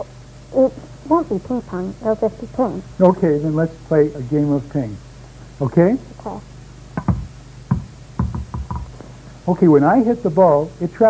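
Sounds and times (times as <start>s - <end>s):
paddle striking ping-pong ball: 7.0s - 8.9s
ping-pong ball bouncing on table: 7.0s - 8.9s.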